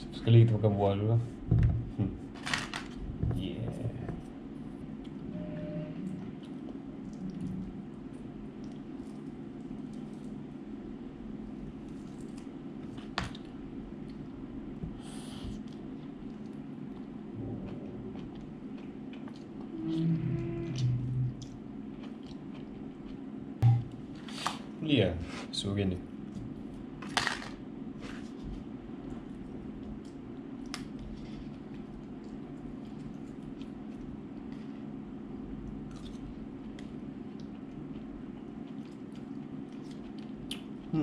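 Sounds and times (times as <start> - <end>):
low room hum: 0.0 - 41.0.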